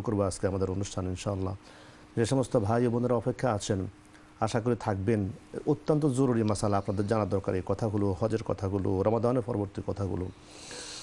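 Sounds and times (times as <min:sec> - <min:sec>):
man speaking: 0:02.2 - 0:10.4
breath drawn in close: 0:10.4 - 0:11.0.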